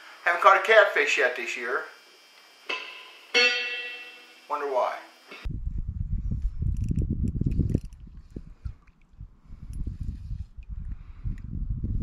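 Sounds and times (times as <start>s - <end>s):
electric guitar note: 2.7s - 5.4s
wind buffeting microphone: 5.4s - 12.0s.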